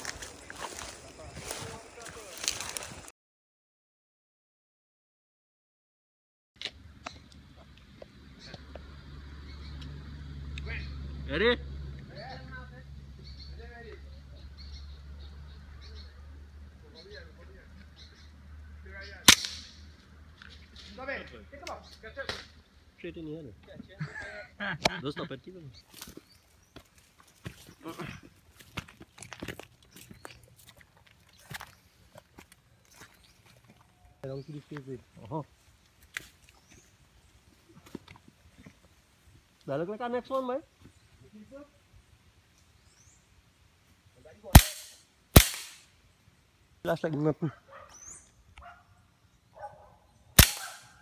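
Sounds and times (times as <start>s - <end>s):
sharp shot-like crack: 19.3s - 19.8s, 44.5s - 45.9s, 50.4s - 51.0s.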